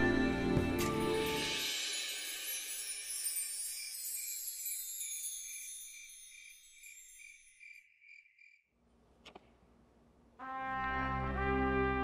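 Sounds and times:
high chime-like shimmer: 0.0 - 8.4
crickets chirping: 2.8 - 8.7.

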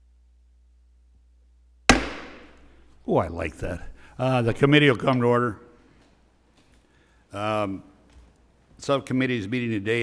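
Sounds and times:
gavel strike on wood: 1.9 - 2.7.

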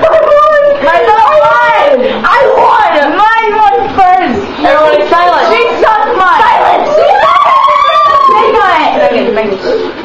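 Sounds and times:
excited voices: 0.0 - 10.0.

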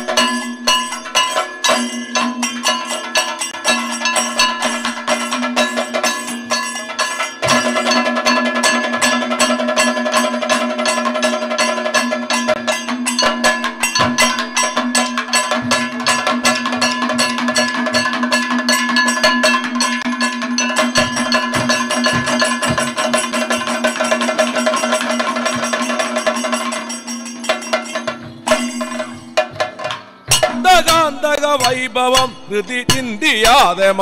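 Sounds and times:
heavy low drum beats: 0.0 - 2.8, 7.4 - 34.0
hand cymbals: 0.0 - 34.0
rapid drum strokes: 0.0 - 34.0.

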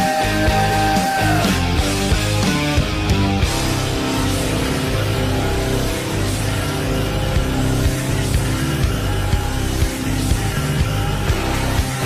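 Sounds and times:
heavy rock music: 0.0 - 12.0.

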